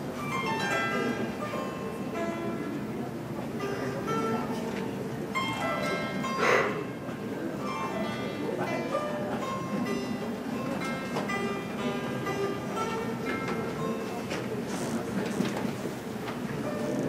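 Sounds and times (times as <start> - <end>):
plucked zither melody: 0.0 - 17.0.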